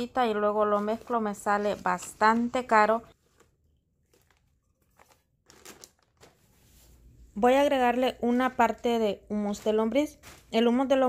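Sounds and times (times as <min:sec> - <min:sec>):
plastic bag crinkling: 0:03.2 - 0:06.5.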